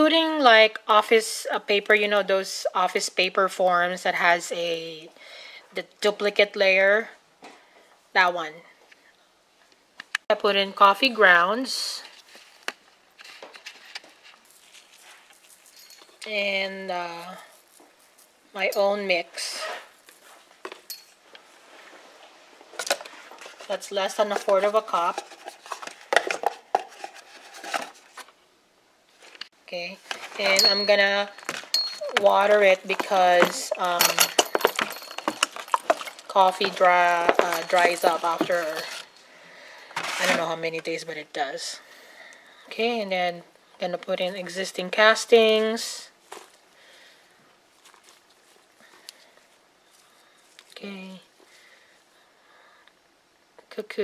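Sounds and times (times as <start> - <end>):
paper cup clicks and rustling: 24.3 - 28.3.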